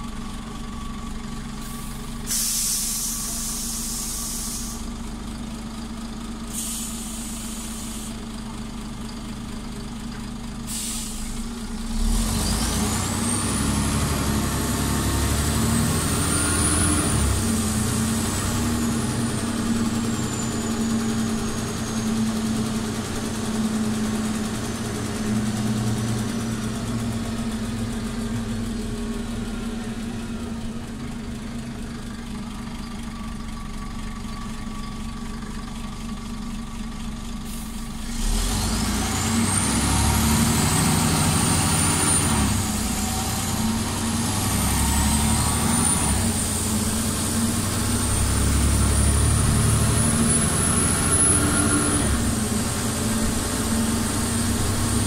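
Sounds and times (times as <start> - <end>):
bus engine with high whine: 0.0 - 55.0.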